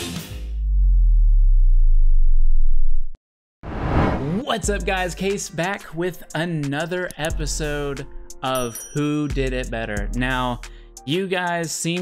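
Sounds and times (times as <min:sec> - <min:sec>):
deep electronic bass drop: 0:00.5 - 0:04.4.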